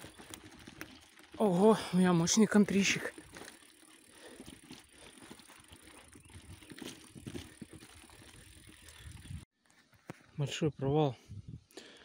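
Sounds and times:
bike knocks and rattles: 0:03.0 - 0:09.0
tyre rumble on dirt: 0:04.4 - 0:08.8.

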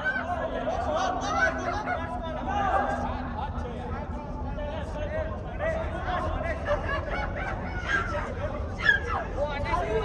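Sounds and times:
players calling and shouting: 0:00.0 - 0:03.3.

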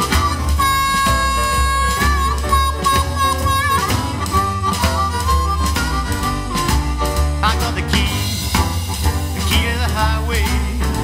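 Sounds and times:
harmonica bending notes: 0:00.0 - 0:07.7
blues band playing: 0:00.0 - 0:11.0.

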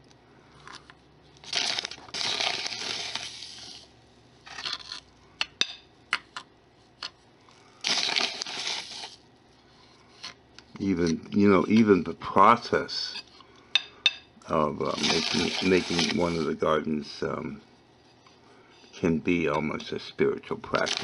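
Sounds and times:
spoon scraping sand: 0:14.8 - 0:16.6.

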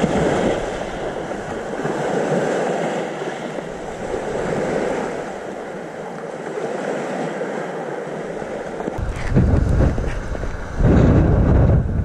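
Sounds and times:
waves washing onto gravel shore: 0:00.0 - 0:11.0.

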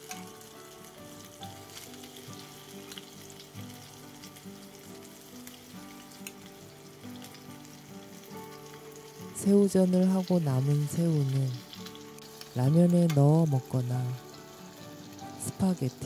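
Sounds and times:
food sizzling in oil: 0:00.0 - 0:16.0.

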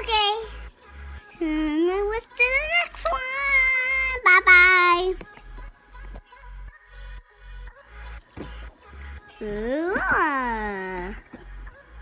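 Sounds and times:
background music with steady beat: 0:00.0 - 0:12.0
girl singing high notes: 0:01.3 - 0:05.2, 0:09.2 - 0:11.9.

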